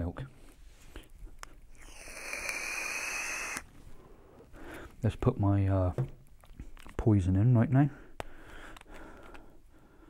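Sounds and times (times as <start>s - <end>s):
vape airy hiss: 1.8s - 3.7s.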